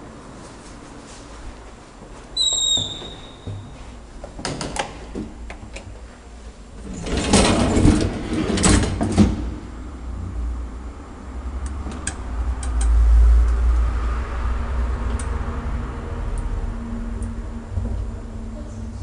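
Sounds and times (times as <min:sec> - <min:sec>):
elevator humming: 0:00.0 - 0:19.0
elevator door sliding and clattering: 0:02.4 - 0:10.4.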